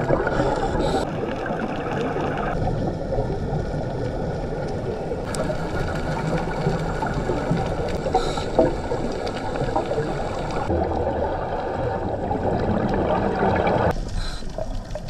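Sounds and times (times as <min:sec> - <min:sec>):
underwater rumble: 0:00.0 - 0:15.0.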